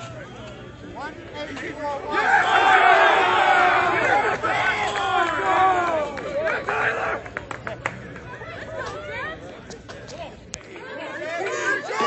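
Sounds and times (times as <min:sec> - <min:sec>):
crowd shouting and cheering: 0:01.6 - 0:09.0, 0:10.7 - 0:12.0.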